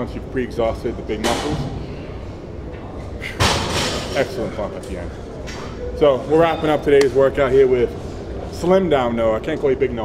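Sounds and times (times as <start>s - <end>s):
busy gym background noise: 0.0s - 10.0s.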